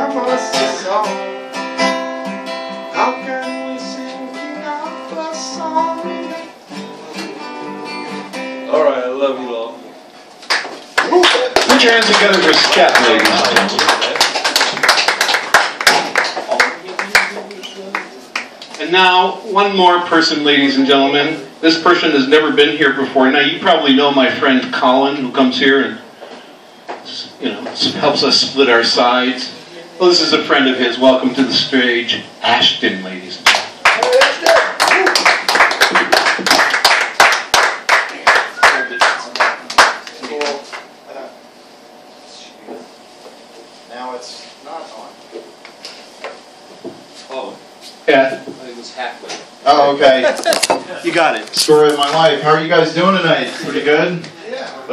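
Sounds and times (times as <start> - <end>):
people clapping: 10.4 - 18.8, 33.4 - 40.9.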